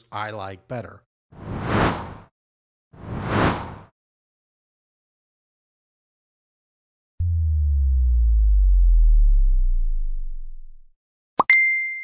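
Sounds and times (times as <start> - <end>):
deep bass swell sliding downward: 7.2 - 10.9
bright ding: 11.4 - 12.0.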